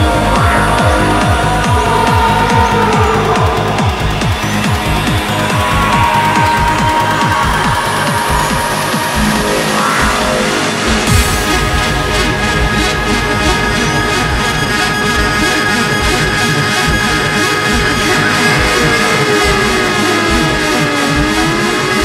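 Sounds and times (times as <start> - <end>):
sustained synth lines: 0.0 - 22.0
trance dance music: 0.0 - 22.0
fast kick drum: 10.9 - 22.0.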